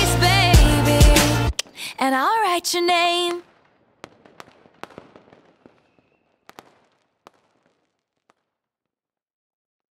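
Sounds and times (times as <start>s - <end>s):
firework shells bursting: 1.5s - 8.7s.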